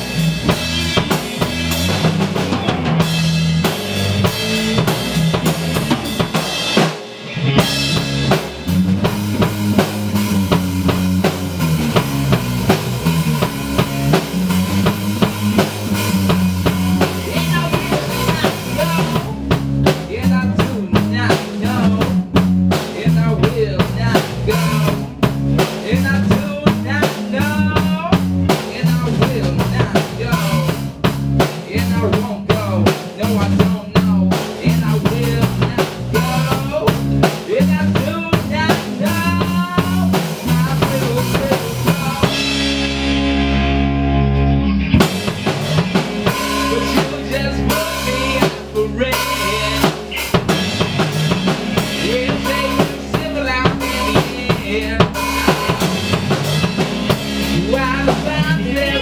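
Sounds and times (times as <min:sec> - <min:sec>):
rock band playing: 0:00.0 - 0:59.0
man singing into microphone: 0:17.2 - 0:22.2, 0:22.8 - 0:25.1, 0:25.7 - 0:30.8, 0:31.6 - 0:42.6, 0:46.4 - 0:50.8, 0:51.8 - 0:56.1, 0:57.4 - 0:59.0.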